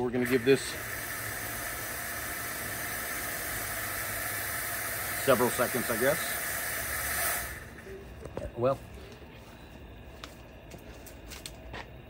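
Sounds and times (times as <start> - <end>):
fog machine hissing: 0.0 - 8.8.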